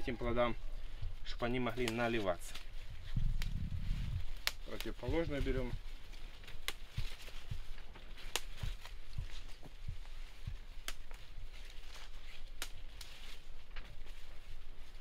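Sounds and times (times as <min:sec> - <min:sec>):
leaves rustling: 0:00.0 - 0:15.0
leaf stalks snapping: 0:01.3 - 0:15.0.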